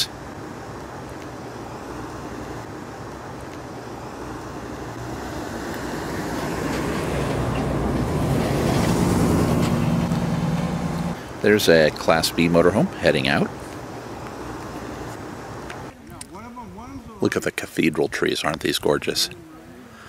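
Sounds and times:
motorhome driving past: 0.0s - 15.9s.

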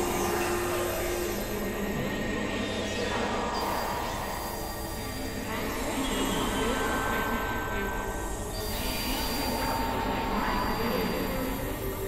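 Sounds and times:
droning electronic noise: 0.0s - 12.0s.

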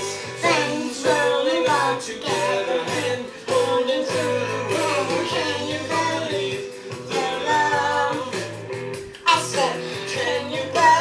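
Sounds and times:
bass line: 0.0s - 11.0s
guitar: 0.0s - 11.0s
person singing: 0.0s - 11.0s.

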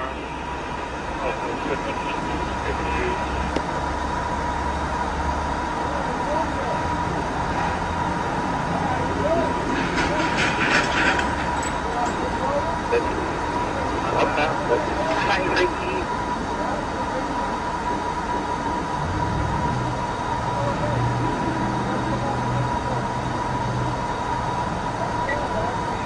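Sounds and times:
constant high-pitched tone: 0.0s - 26.0s.

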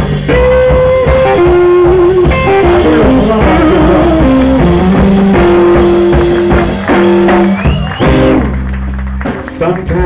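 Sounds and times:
blues band playing: 0.0s - 10.0s.

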